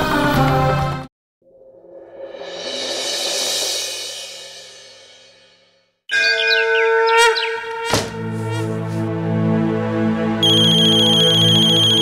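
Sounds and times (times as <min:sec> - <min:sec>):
birds chirping: 0:06.1 - 0:08.4
conch shell blown: 0:06.1 - 0:09.1, 0:10.4 - 0:12.0.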